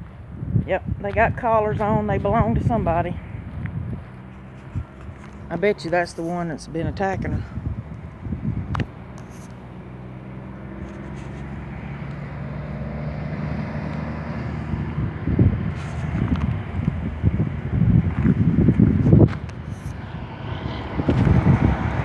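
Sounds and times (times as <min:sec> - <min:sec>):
wind buffeting microphone: 0:00.0 - 0:22.0
truck engine running: 0:01.9 - 0:20.2.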